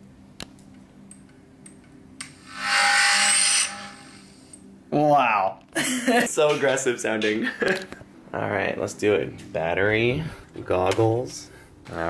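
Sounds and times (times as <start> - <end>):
drone motors startup whir: 2.2 - 4.6.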